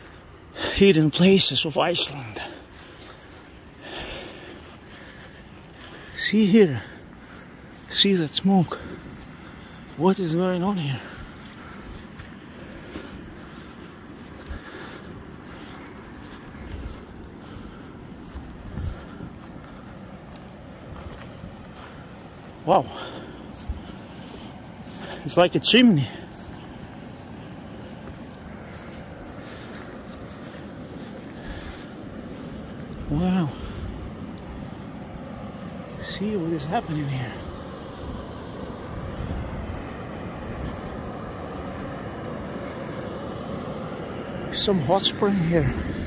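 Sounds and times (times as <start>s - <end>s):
footsteps on muddy grass: 0.0s - 46.0s
steady outdoor noise: 0.0s - 46.0s.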